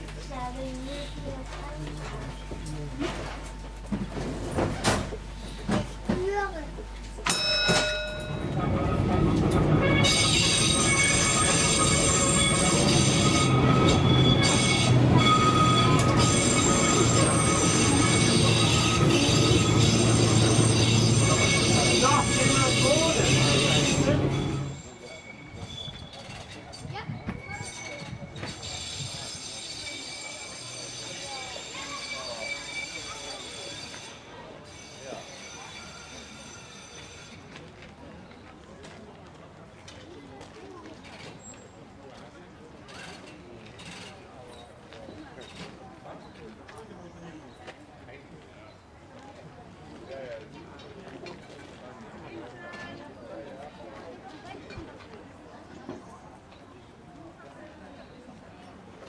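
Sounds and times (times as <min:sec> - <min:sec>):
tram wheels running on rails: 0:00.0 - 0:46.9
wheels squealing: 0:08.6 - 0:37.6.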